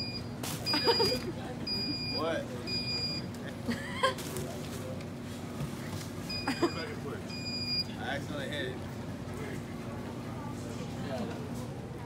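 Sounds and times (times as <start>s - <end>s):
high warning beep: 0.0s - 3.3s, 6.3s - 7.9s.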